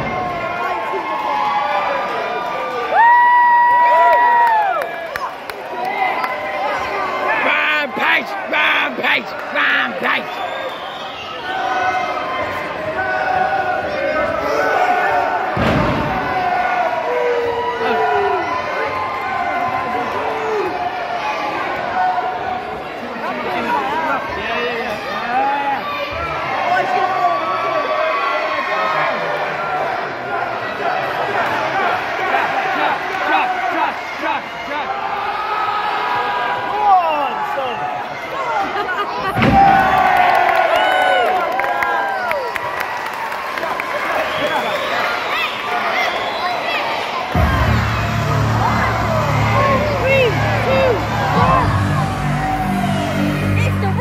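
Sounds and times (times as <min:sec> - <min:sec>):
crowd shouting and cheering: 0:00.0 - 0:54.0.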